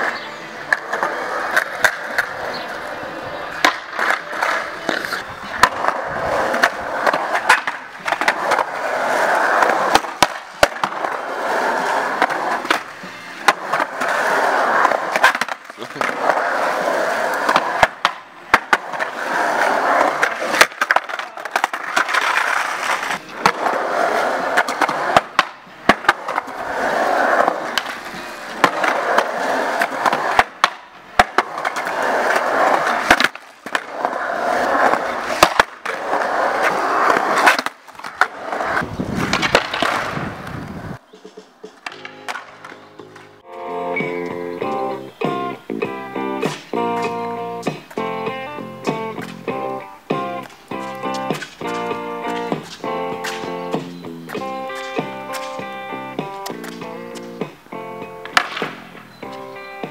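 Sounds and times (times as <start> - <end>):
skateboard popping and landing clacks: 0.0 - 2.4, 3.6 - 43.4, 44.0 - 59.9
skateboard wheels rolling on concrete: 0.0 - 59.9.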